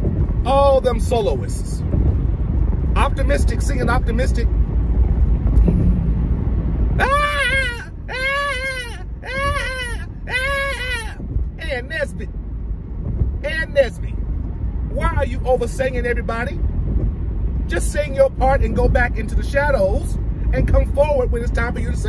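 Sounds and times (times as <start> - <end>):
car cabin road rumble: 0.0 - 22.0
man singing high notes: 7.0 - 11.2.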